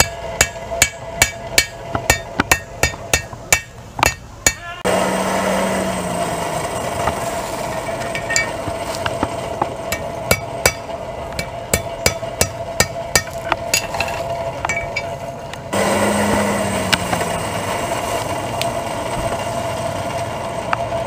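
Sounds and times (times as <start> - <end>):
hammer striking iron on anvil: 0.0 - 4.8, 7.7 - 15.2.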